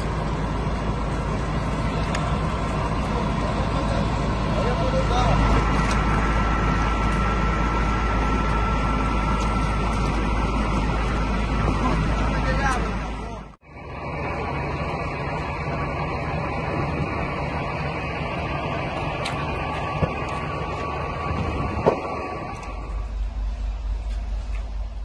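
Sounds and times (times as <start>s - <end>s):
faint steady whine: 0.0s - 25.0s
fire engine motor running: 0.0s - 25.0s.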